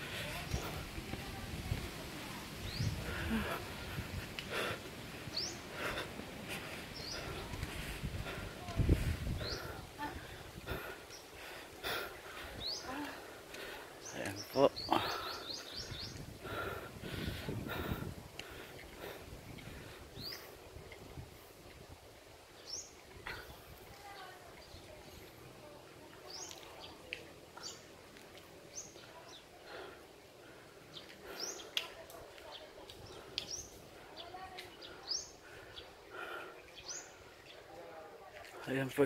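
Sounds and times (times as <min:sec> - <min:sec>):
quiet outdoor background noise: 0:00.0 - 0:39.0.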